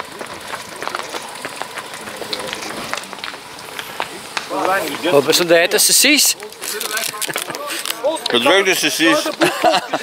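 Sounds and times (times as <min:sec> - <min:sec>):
wind and tyre noise: 0:00.0 - 0:09.5.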